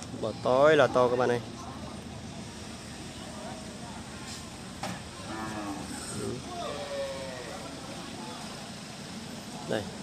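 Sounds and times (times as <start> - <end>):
cattle mooing: 5.2 - 7.6.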